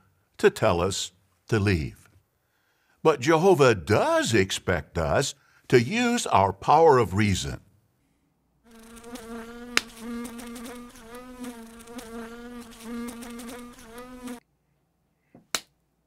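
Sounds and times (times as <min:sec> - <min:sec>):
insect buzz: 0:08.7 - 0:14.4.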